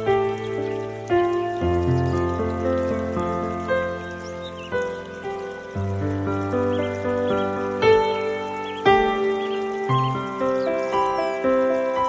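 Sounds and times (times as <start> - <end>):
slow solo piano: 0.0 - 12.0
water trickling: 0.0 - 12.0.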